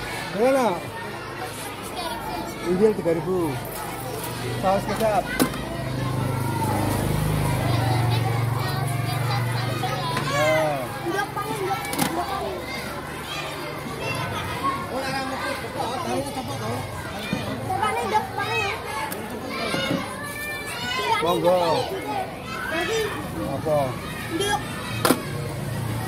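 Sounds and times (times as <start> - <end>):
children chattering and calling out: 0.0 - 26.0.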